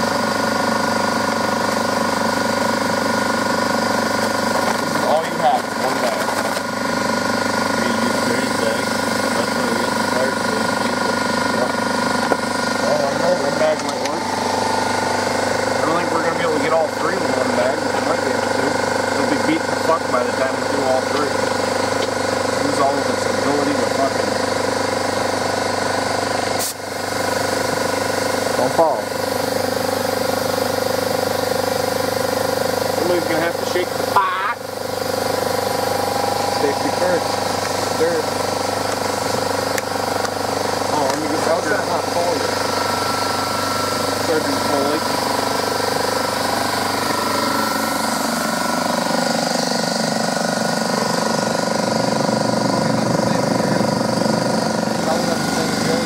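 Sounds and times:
air compressor running: 0:00.0 - 0:56.0.

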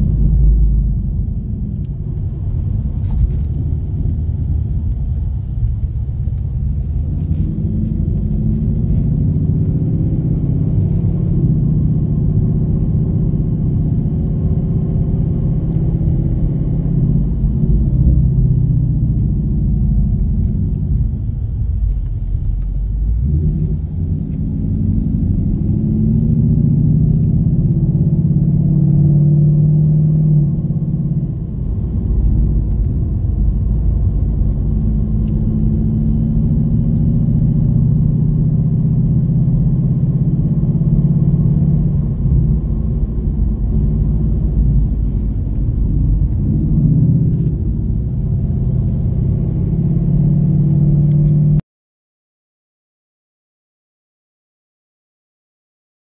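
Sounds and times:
car engine drone from cabin: 0:00.0 - 0:51.6.

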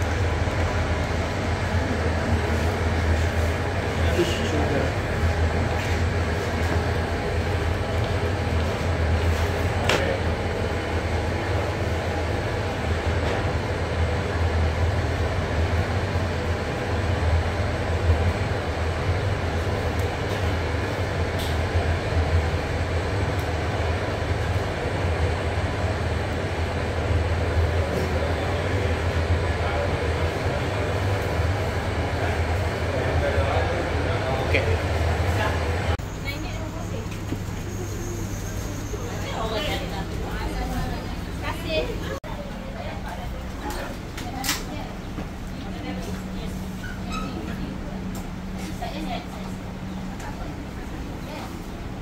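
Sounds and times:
kitchen machinery humming: 0:00.0 - 0:52.0.

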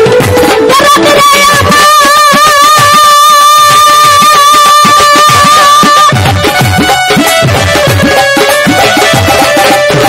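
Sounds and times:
drum beating quick rhythm: 0:00.0 - 0:10.0.

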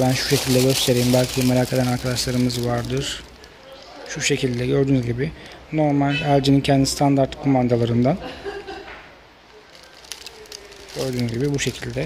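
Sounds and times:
plastic bag crinkling: 0:00.0 - 0:05.7, 0:09.5 - 0:12.0.

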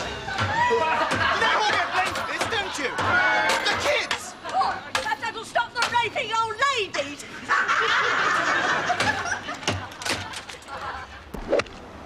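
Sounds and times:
studio audience laughter: 0:07.4 - 0:11.3.

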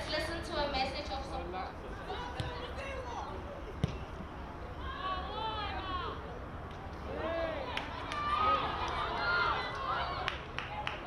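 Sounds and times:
ball kick thud: 0:03.8 - 0:04.0
players shouting: 0:04.4 - 0:06.4, 0:07.0 - 0:11.0.

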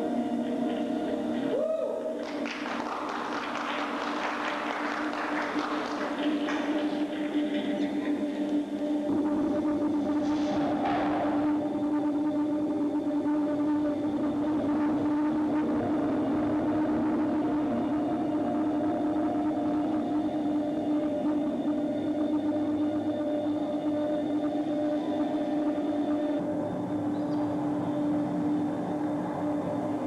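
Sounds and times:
low electronic drone hum: 0:00.0 - 0:30.0.

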